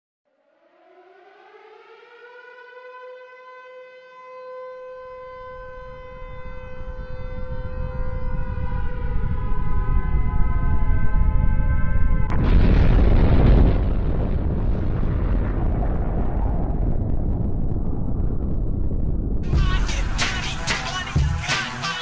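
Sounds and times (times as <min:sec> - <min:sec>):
air-raid siren wailing: 0:00.3 - 0:12.3
second siren tone: 0:00.3 - 0:12.3
low rumble: 0:05.8 - 0:21.5.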